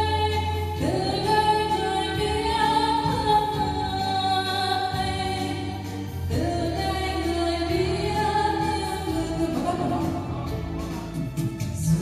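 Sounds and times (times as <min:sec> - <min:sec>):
karaoke backing track: 0:00.0 - 0:12.0
person singing: 0:00.0 - 0:12.0.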